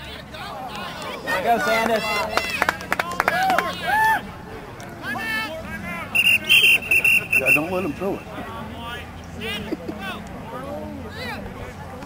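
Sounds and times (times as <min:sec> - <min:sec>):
spectators' voices: 0:00.0 - 0:12.0
referee's whistle blasts: 0:06.1 - 0:08.0.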